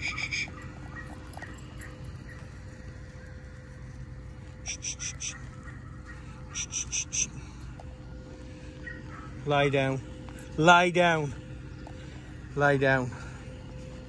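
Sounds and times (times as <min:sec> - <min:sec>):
faint steady hum: 0:00.0 - 0:14.0.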